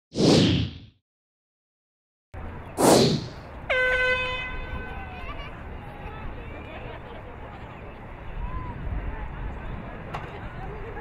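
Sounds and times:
swoosh sound effect: 0:02.8 - 0:03.4
electronic horn tone: 0:03.7 - 0:04.8.

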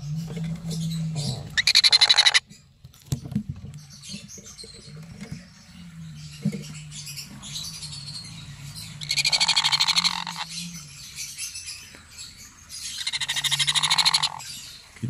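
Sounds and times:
faint low hum: 0:00.0 - 0:15.0
parrot chick begging calls: 0:00.2 - 0:02.4, 0:07.0 - 0:11.8, 0:12.6 - 0:14.7.

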